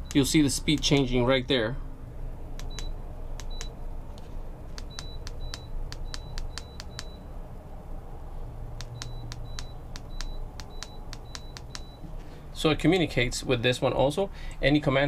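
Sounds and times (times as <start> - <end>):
low steady hum: 0.0 - 15.0
remote button clicks: 2.6 - 3.8, 4.8 - 7.2, 8.8 - 12.0
short high beeps: 4.8 - 7.3, 8.9 - 12.1.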